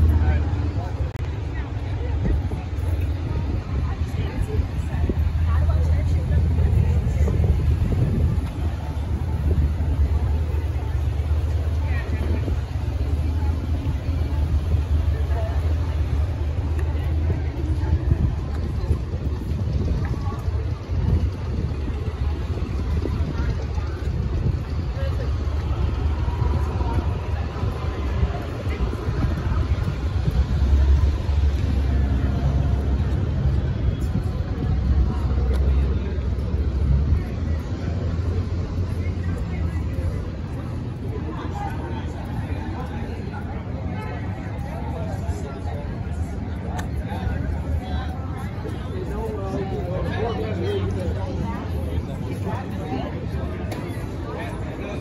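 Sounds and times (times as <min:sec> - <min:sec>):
low rumble of traffic: 0:00.0 - 0:55.0
people talking: 0:00.0 - 0:55.0
voices of passers-by: 0:00.0 - 0:55.0.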